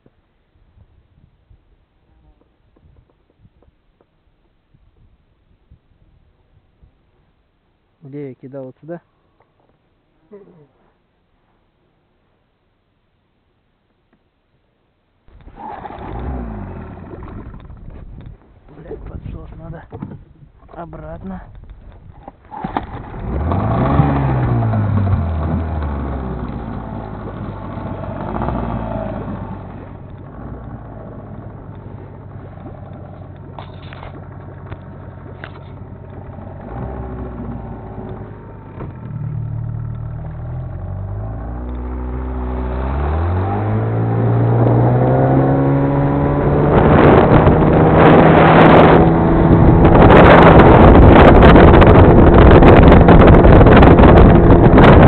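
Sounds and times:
outboard motor running: 15.3 - 18.4, 22.4 - 42.8, 46.2 - 55.0.

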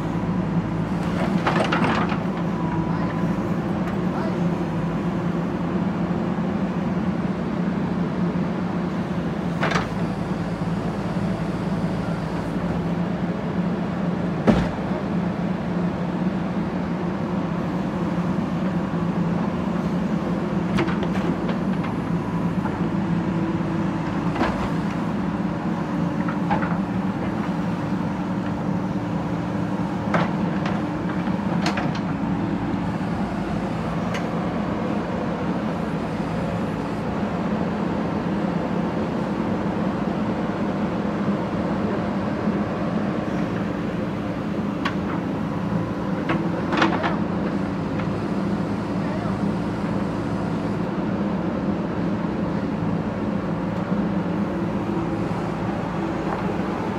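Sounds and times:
diesel engine running under load: 0.0 - 56.9.

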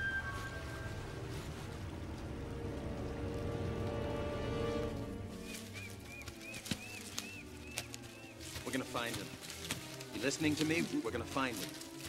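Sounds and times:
footsteps through undergrowth: 0.0 - 12.0.

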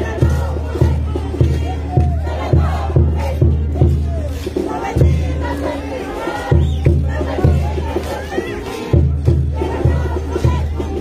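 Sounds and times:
bass drum beating: 0.0 - 5.8
parade band music: 0.0 - 11.0.

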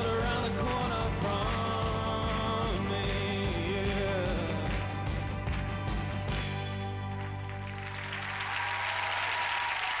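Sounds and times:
studio audience applauding: 4.0 - 10.0.

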